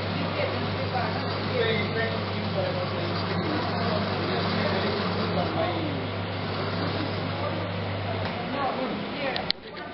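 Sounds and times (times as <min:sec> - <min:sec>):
machine motor humming: 0:00.0 - 0:09.9
voices talking: 0:00.0 - 0:09.9.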